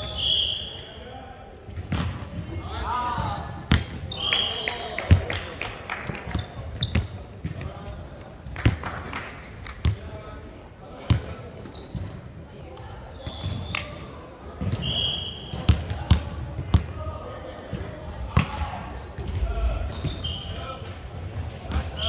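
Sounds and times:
players' voices: 0.0s - 22.0s.

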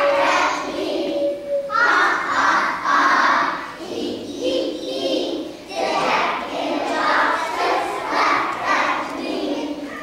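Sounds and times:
young children's voices: 0.0s - 10.0s.

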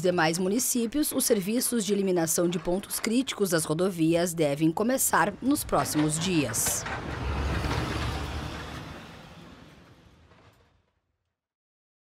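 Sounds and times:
road traffic and roadworks rumble: 4.4s - 10.8s.

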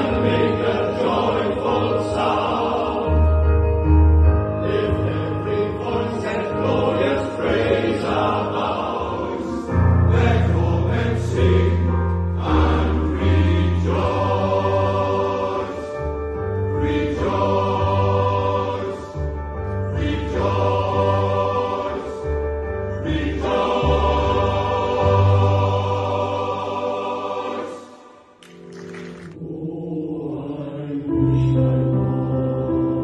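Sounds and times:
male choir singing in harmony: 0.0s - 28.4s, 29.0s - 33.0s.

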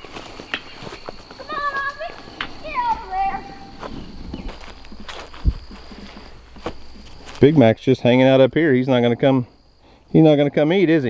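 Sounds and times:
child running on grass: 0.0s - 8.3s
high-pitched calls: 0.6s - 4.9s.

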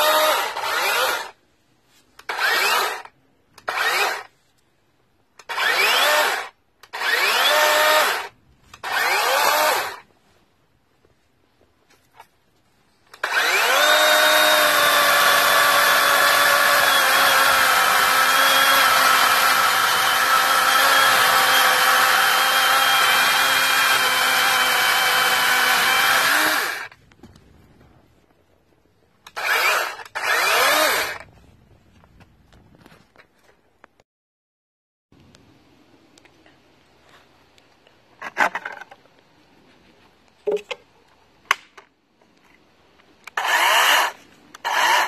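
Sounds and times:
electric chainsaw cutting wood: 0.0s - 1.4s, 2.2s - 4.3s, 5.4s - 10.0s, 13.1s - 27.0s, 29.3s - 31.3s, 43.3s - 45.0s.

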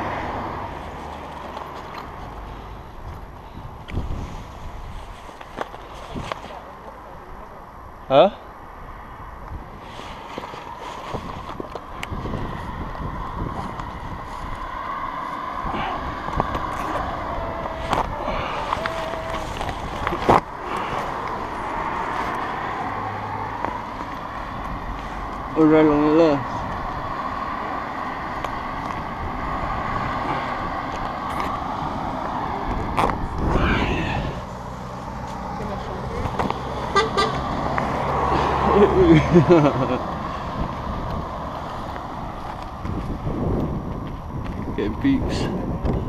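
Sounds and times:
road traffic passing: 0.0s - 46.0s
wind buffeting microphone: 2.9s - 5.4s, 8.8s - 25.5s, 26.4s - 38.7s, 39.3s - 46.0s
car horn tooting: 36.9s - 37.5s.

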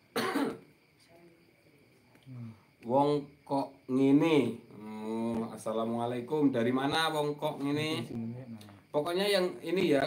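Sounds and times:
man coughing: 0.1s - 0.6s.

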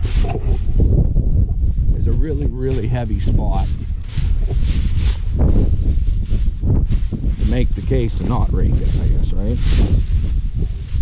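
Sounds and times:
crackling rustle: 0.0s - 11.0s
wind buffeting microphone: 0.0s - 11.0s.

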